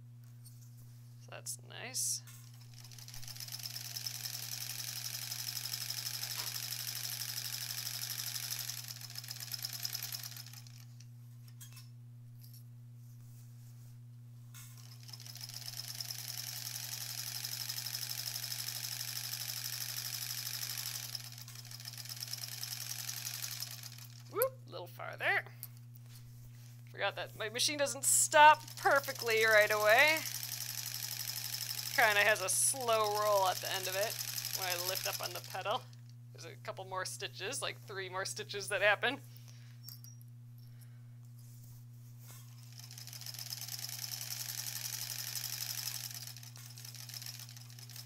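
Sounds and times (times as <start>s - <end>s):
sewing machine stitching: 2.6s - 10.8s, 14.8s - 24.3s, 28.1s - 35.9s, 42.7s - 48.0s.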